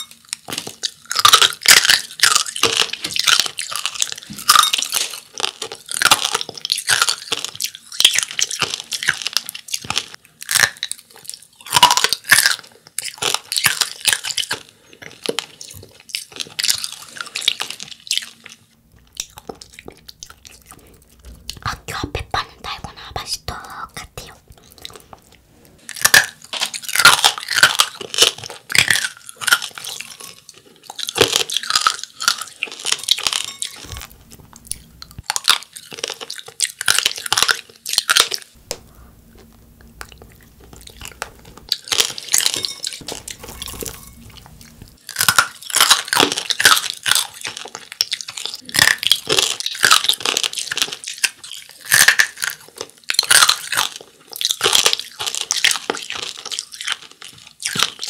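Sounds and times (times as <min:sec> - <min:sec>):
crunching and chewing candy: 0:00.0 - 0:58.0.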